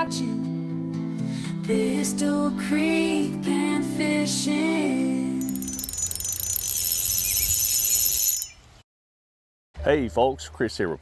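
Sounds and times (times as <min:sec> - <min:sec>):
fishing reel drag buzzing: 0:05.4 - 0:08.6.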